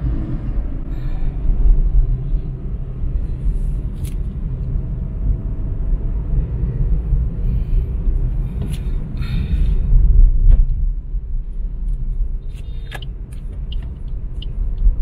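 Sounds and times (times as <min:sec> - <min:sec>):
car driving rumble from inside: 0:00.0 - 0:15.0.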